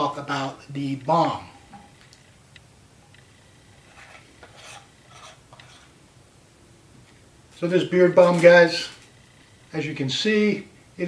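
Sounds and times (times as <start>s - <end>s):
metal tin lid scraping: 3.9s - 5.9s.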